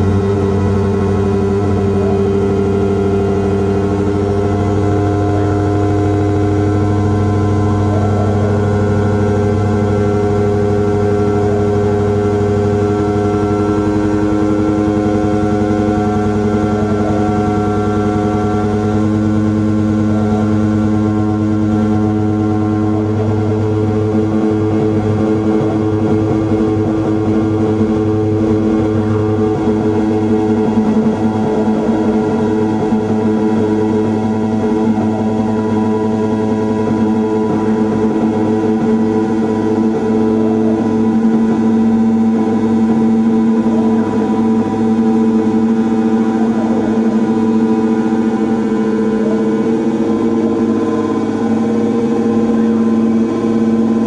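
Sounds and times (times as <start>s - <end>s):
electronic drone: 0.0s - 54.0s.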